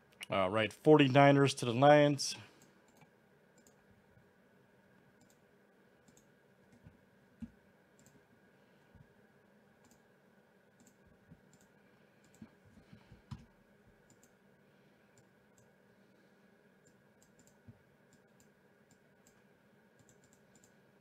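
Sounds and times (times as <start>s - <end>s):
computer mouse clicks: 2.6s - 3.8s, 5.2s - 5.4s, 6.0s - 8.2s, 9.8s - 10.0s, 10.8s - 14.4s, 15.2s - 15.7s, 16.8s - 20.8s.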